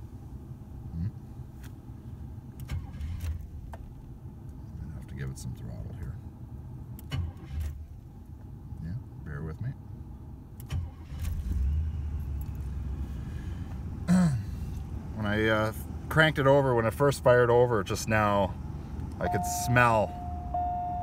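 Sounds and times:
car engine cranking and starting: 0.0 - 8.7, 10.1 - 21.0.

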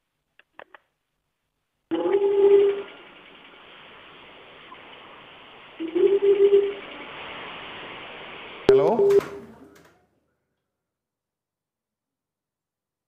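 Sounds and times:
low telephone ringing tone: 1.9 - 3.0, 5.8 - 6.8, 8.7 - 9.5
telephone line hiss: 1.9 - 9.5.

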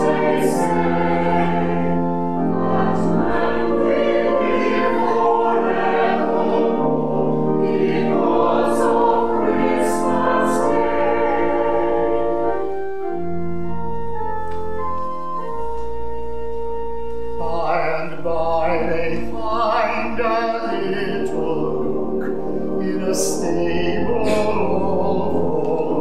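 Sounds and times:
church choir singing a carol: 0.0 - 16.0, 17.4 - 26.0
organ chords: 0.0 - 26.0.

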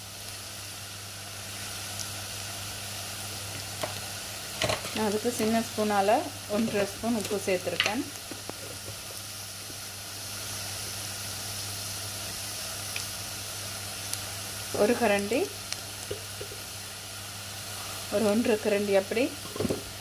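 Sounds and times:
vegetables sizzling in oil: 0.0 - 20.0.

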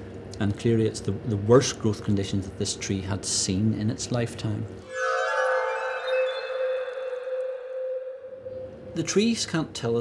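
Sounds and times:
sustained bell-like tone: 4.8 - 9.0.

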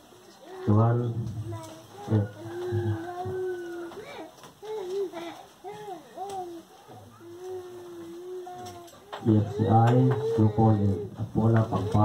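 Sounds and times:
man's voice through loudspeaker: 0.7 - 1.4, 9.2 - 12.0.

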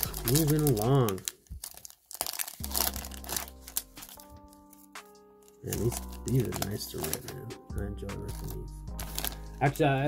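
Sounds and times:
foil wrapper crinkling and tearing: 0.0 - 7.5, 8.2 - 9.6
quiet background music: 0.0 - 10.0.

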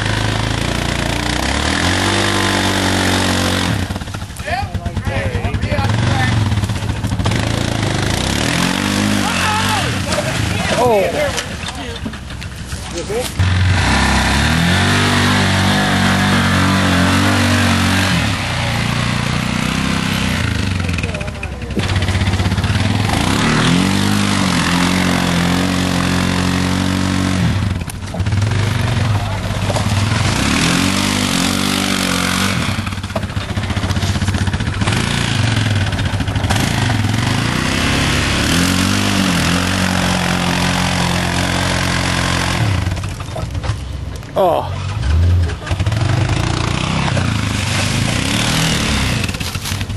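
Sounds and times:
engine revving hard: 0.0 - 12.0, 13.0 - 43.2, 44.8 - 49.9.

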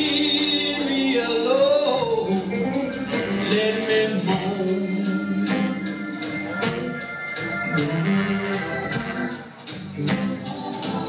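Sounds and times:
blues band playing: 0.0 - 11.0
held keyboard chords: 2.1 - 11.0
drum hits: 5.4 - 11.0.

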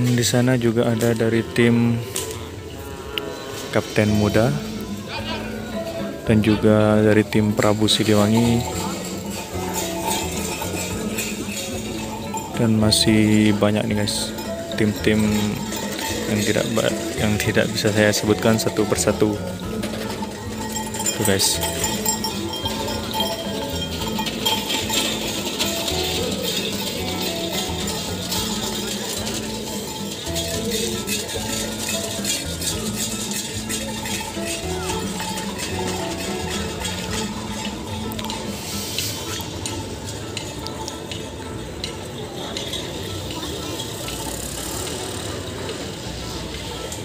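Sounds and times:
background voices: 0.0 - 47.0
melody of held notes: 1.1 - 47.0
light metallic clinking: 7.8 - 45.4.

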